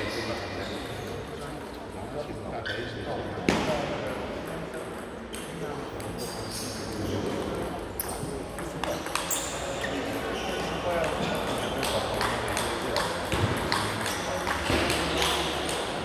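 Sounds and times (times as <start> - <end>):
murmur of background voices: 0.0 - 16.0
table tennis balls clicking: 8.0 - 9.6, 10.9 - 16.0.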